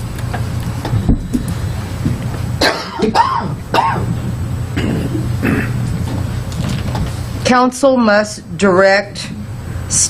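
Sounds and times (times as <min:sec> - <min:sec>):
low steady hum: 0:00.0 - 0:10.0
woman coughing and clearing throat: 0:02.6 - 0:04.2, 0:04.8 - 0:05.8.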